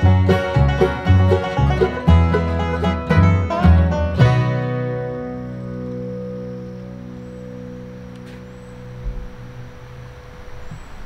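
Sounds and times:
bluegrass band chord ringing: 0.0 - 10.6.

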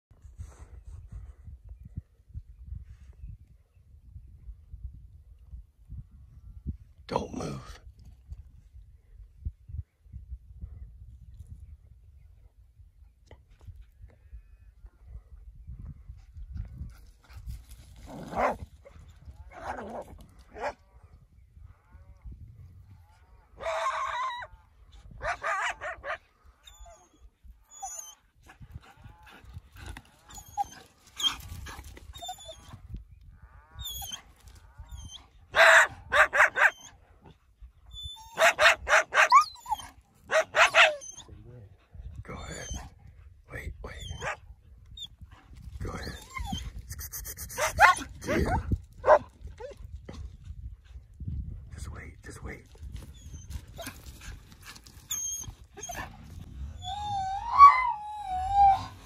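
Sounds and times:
dogs barking: 25.2 - 26.2, 35.5 - 37.0, 38.4 - 39.5, 40.3 - 41.2, 47.5 - 49.3.

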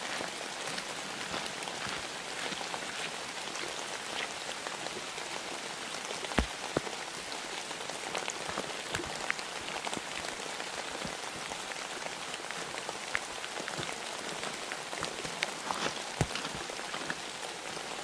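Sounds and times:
steady rain hiss: 0.0 - 18.0.

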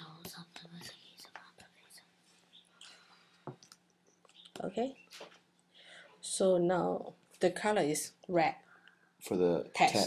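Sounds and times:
faint whispering: 0.0 - 2.2
low steady hum: 0.0 - 10.0.

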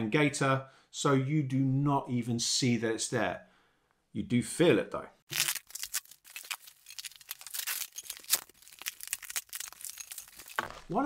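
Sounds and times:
bubble wrap crackling: 5.3 - 11.0.

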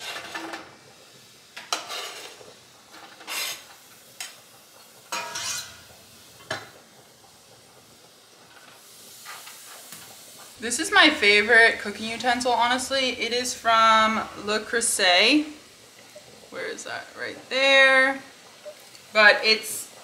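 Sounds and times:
vegetables sizzling in pan: 0.0 - 20.0.

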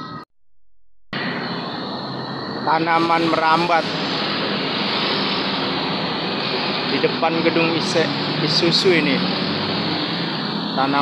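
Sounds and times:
busy street traffic: 1.2 - 11.0
motorbikes passing: 2.8 - 11.0.

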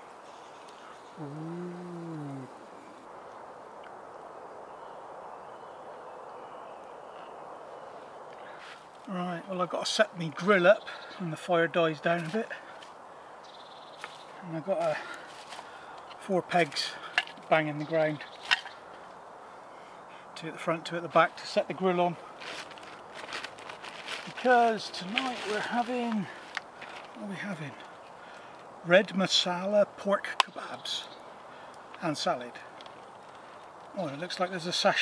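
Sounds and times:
faint bird calls: 0.0 - 3.5, 4.2 - 8.9, 10.8 - 11.4, 17.7 - 20.4
low woodland hush: 0.0 - 35.0.

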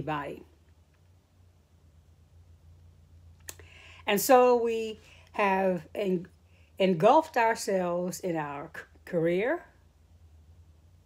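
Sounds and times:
low steady hum: 0.0 - 11.0
mouth click: 3.4 - 3.7
soft breath: 3.6 - 4.1.

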